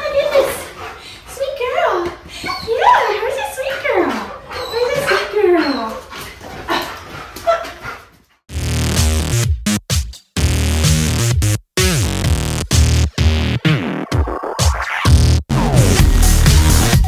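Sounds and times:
young dog whining and yelping: 2.3 - 8.0
electronic music with a beat: 8.5 - 17.0.

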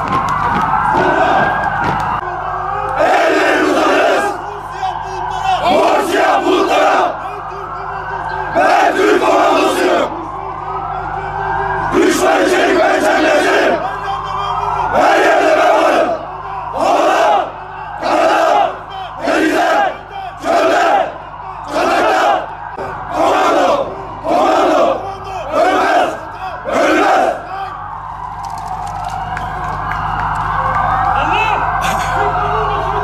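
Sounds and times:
soldiers shouting in unison: 2.9 - 10.1, 14.6 - 27.8.

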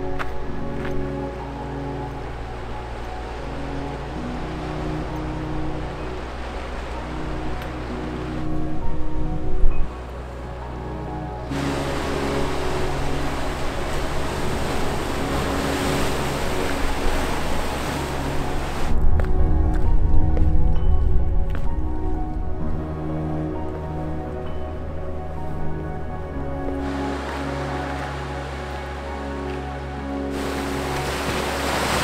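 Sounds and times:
background music sustained notes: 0.0 - 32.0
ocean surf breaking on rocks: 11.5 - 19.0, 30.3 - 32.0.

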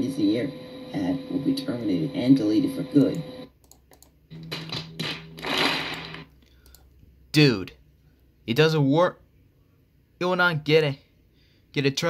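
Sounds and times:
steady low hum: 0.0 - 3.5.

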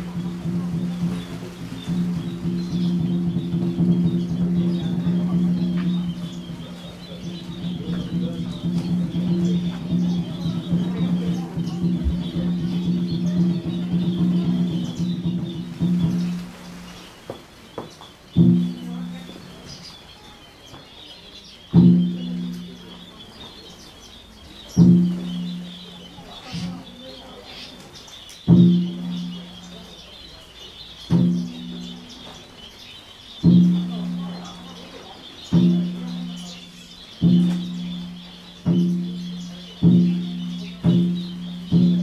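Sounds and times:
bird chirping: 0.0 - 42.0.

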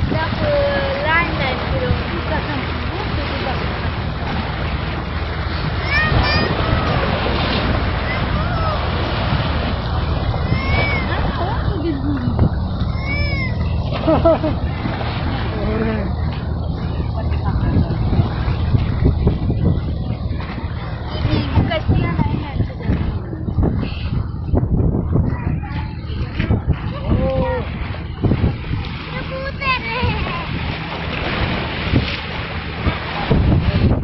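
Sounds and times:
faint voices: 0.0 - 31.1
choppy sea waves: 0.0 - 34.0
low rumble on open water: 0.0 - 34.0
wind buffeting microphone: 0.0 - 34.0.

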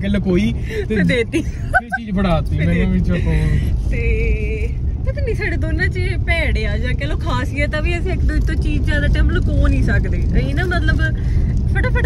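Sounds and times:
car driving rumble inside cabin: 0.0 - 12.0
woman talking: 2.6 - 12.0.

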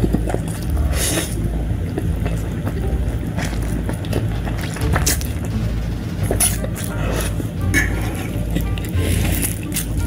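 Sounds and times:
slurping noodles: 0.0 - 2.7, 6.4 - 10.0
steady low hum: 0.0 - 10.0.

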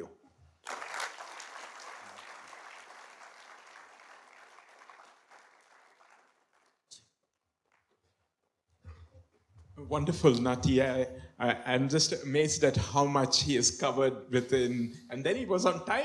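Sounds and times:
audience applauding: 0.6 - 6.9.

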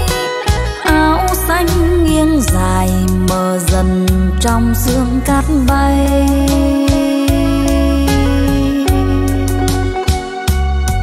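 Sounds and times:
live band playing slow ballad: 0.0 - 11.0.

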